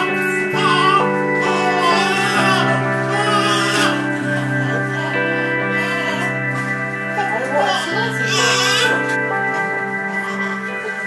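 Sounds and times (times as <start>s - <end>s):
newborn baby crying: 0.0s - 6.6s, 7.2s - 9.2s, 10.2s - 11.0s
background music: 0.0s - 11.0s.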